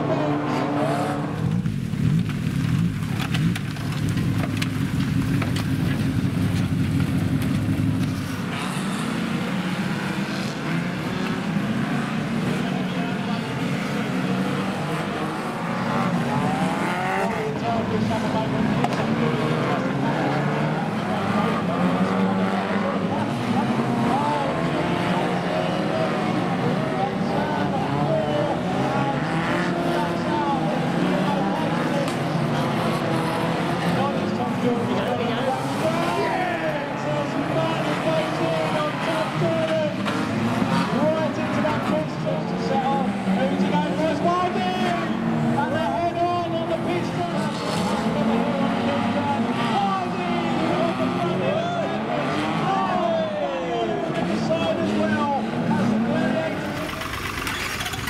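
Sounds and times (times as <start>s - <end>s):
racing car engines revving: 0.0s - 58.0s.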